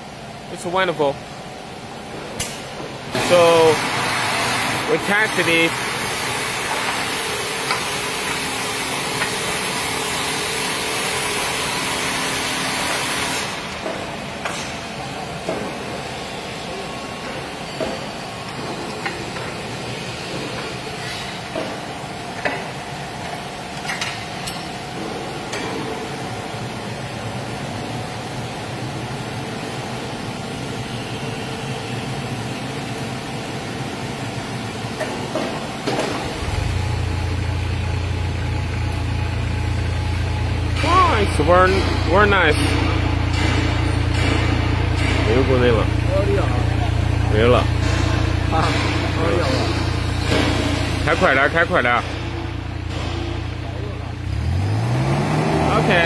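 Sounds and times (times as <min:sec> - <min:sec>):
steady hum: 0:12.2 - 0:54.3
engine low drone: 0:36.1 - 0:56.0.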